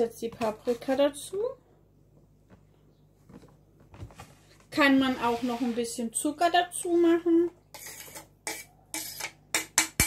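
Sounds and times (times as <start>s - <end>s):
scraping on plastic cutting board: 4.9s - 5.9s.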